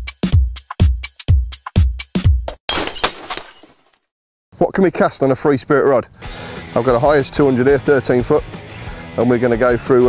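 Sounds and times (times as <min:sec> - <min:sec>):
electronic music with kick drum: 0:00.0 - 0:02.6
glass shattering: 0:02.7 - 0:04.1.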